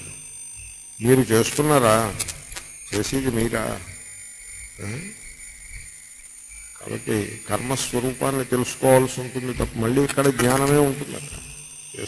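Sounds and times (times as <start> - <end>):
high-pitched electronic whine: 0.0 - 12.0.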